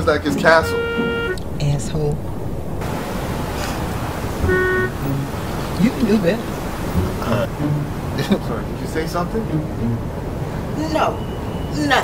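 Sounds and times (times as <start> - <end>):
road and engine noise in car: 0.0 - 12.0
car horn toot: 0.3 - 1.4, 4.3 - 5.5.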